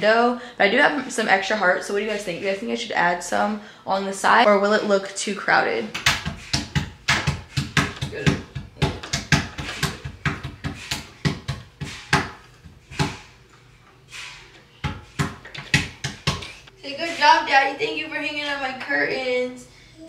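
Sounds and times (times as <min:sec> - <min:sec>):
hands slapping wooden table: 0:06.0 - 0:13.2.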